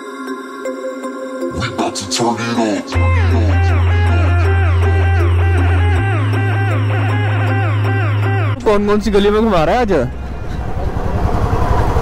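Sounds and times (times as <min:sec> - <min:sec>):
road and wind noise: 0:09.2 - 0:12.0.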